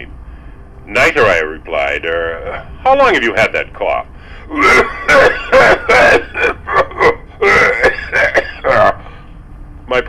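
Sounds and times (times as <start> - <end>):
man speaking: 0.9 - 9.0
man coughing: 4.4 - 9.2.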